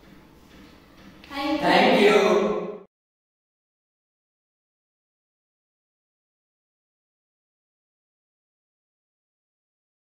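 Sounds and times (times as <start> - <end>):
young voices speaking in unison: 1.2 - 2.6.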